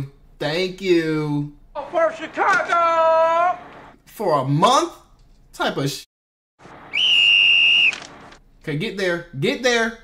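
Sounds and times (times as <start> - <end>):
high whistled note: 6.9 - 8.0.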